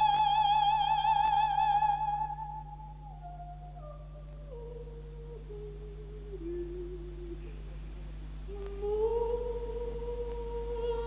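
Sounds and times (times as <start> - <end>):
operatic soprano singing: 0.0 - 7.6, 8.5 - 11.0
steady low hum: 0.0 - 11.0.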